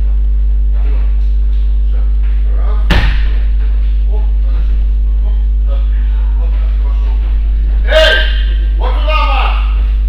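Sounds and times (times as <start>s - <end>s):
low electrical hum: 0.0s - 10.0s
loud vocal exclamation: 7.8s - 8.6s.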